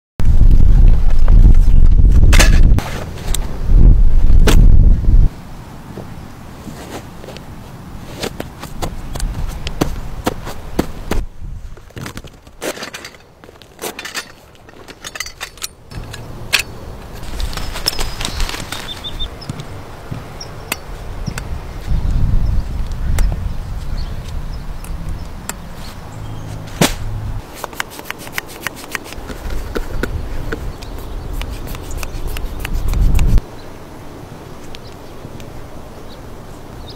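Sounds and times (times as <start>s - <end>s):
wind buffeting microphone: 0.2s - 5.4s, 15.9s - 27.4s, 29.1s - 33.5s
mesh bag crunching on turf: 17.0s - 19.3s.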